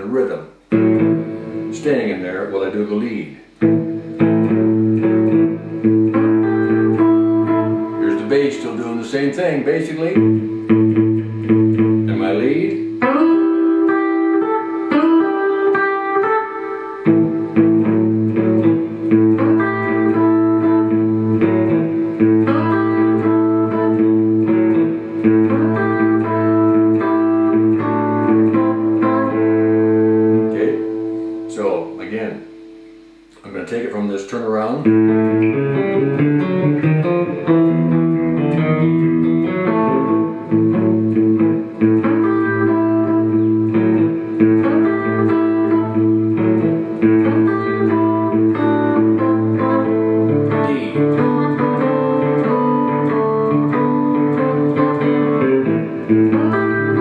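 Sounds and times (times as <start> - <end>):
fingerstyle blues electric guitar: 0.0 - 57.0.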